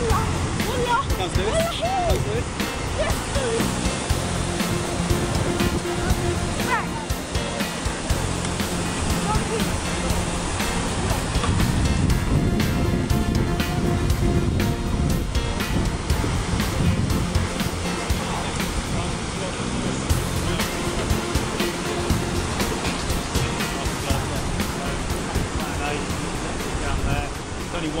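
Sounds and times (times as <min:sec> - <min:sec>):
whitewater rushing: 0:00.0 - 0:28.0
wind buffeting microphone: 0:00.0 - 0:28.0.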